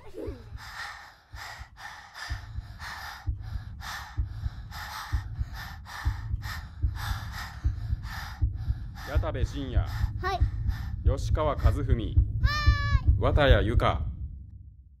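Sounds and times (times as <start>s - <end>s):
quick nervous breathing: 0.0s - 11.0s
low pulsing beat: 0.3s - 15.0s.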